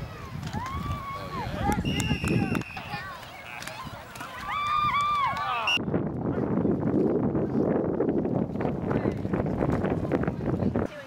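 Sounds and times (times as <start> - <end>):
spectators shouting and yelling: 0.0 - 5.8
muffled crowd noise and chatter: 0.0 - 11.0.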